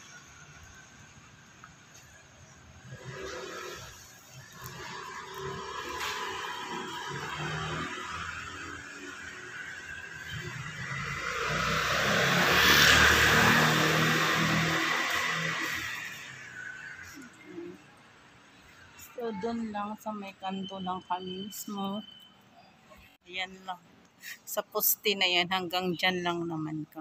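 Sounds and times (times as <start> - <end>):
motor vehicle passing: 2.8 - 17.8.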